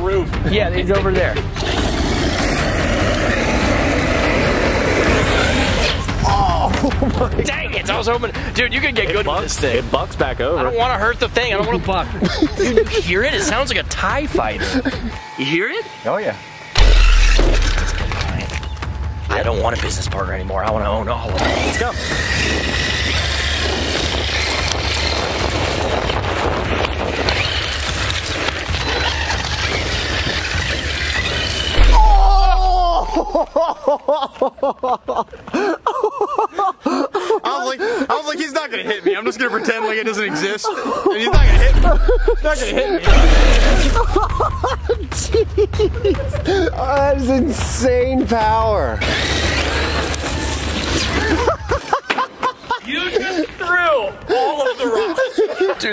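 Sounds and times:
tyres on gravelly pavement: 20.3s - 32.1s, 48.9s - 53.8s
wind rumble on microphone: 22.2s - 30.6s
tyres spraying gravel: 41.4s - 44.4s.

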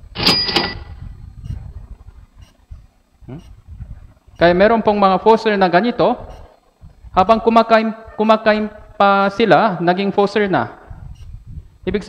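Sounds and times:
man saying hmm: 3.2s - 3.6s.

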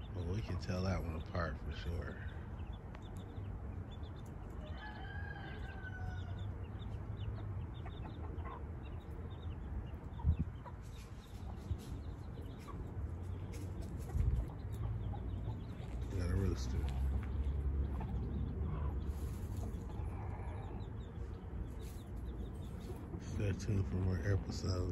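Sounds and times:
chicks peeping: 0.0s - 24.9s
adult chicken call: 4.6s - 6.4s.

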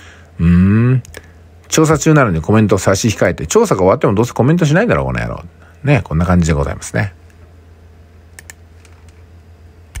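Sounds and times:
low electrical hum: 0.0s - 10.0s
computer clicks: 8.4s - 9.2s.

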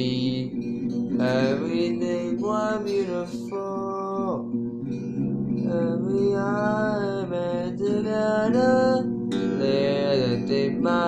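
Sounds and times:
acoustic guitar chord: 0.0s - 11.0s.

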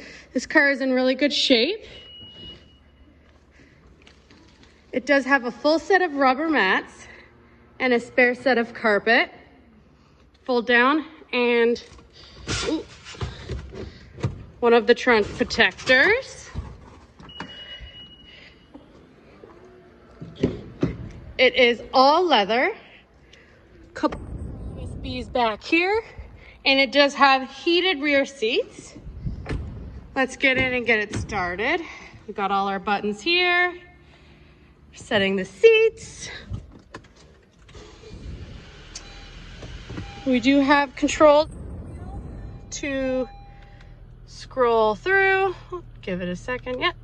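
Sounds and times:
car engine starting and idling: 36.6s - 47.0s
electronic beep: 41.4s - 44.2s.

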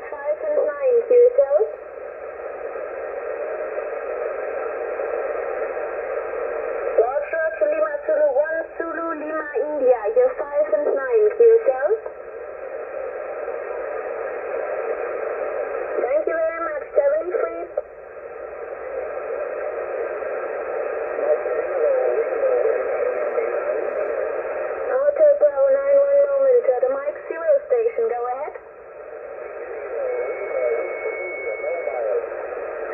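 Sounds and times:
radio band hiss: 0.0s - 32.9s
voices over radio: 0.0s - 32.9s.

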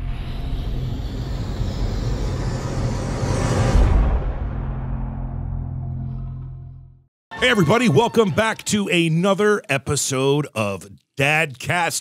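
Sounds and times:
low drone: 0.0s - 7.0s.

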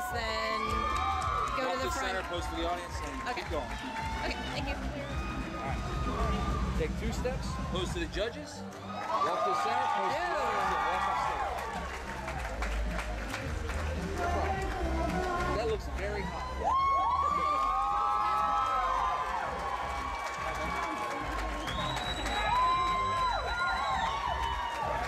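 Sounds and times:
crowd cheering: 0.0s - 25.0s
music with heavy bass and singing: 12.4s - 17.3s.

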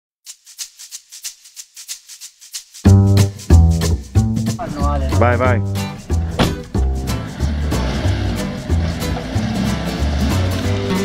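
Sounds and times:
shaker playing quick rhythm: 0.2s - 11.0s.

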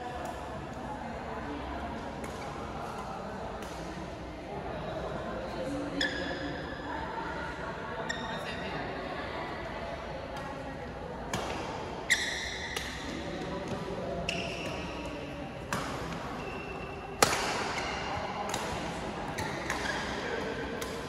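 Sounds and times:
shoes squeaking on court: 16.3s - 17.0s
shuttlecock hit by rackets: 17.2s - 20.2s.

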